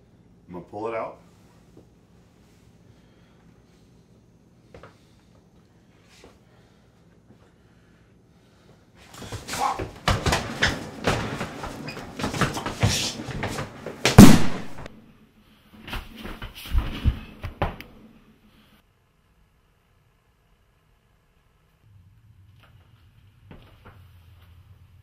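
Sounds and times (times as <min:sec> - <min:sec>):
thuds and scuffling: 0:09.0 - 0:14.9, 0:15.8 - 0:17.8
loud bang: 0:14.0 - 0:14.9.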